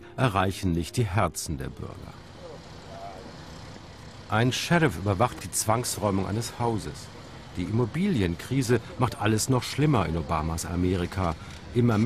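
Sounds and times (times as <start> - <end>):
street background noise: 0.1 - 12.0.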